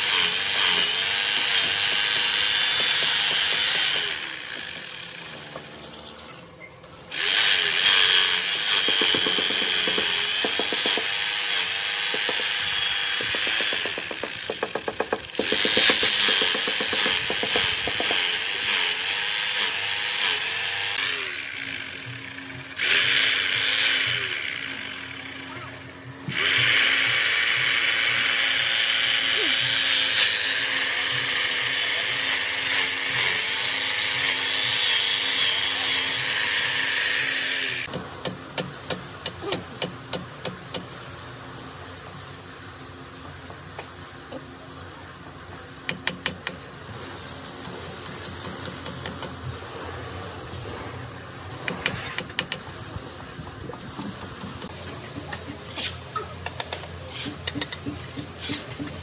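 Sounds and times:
hammer drill boring into concrete: 0.0 - 6.0, 7.1 - 25.5, 26.3 - 38.0.

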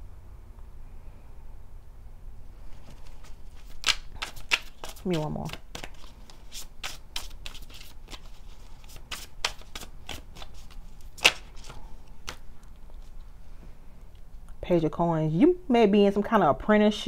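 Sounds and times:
cards shuffling: 2.6 - 13.3
card snap: 3.6 - 6.1, 11.2 - 12.4.

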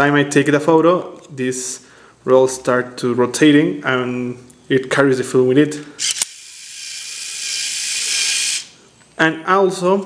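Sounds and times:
camera clicks: 6.0 - 6.4
camera film winder whirring: 6.0 - 8.7.

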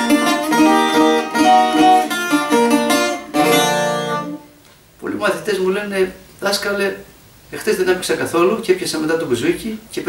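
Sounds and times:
bouzouki picked melody: 0.0 - 4.6.

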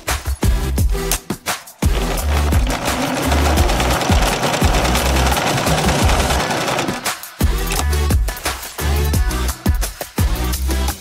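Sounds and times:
sewing machine stitching: 1.8 - 7.2.

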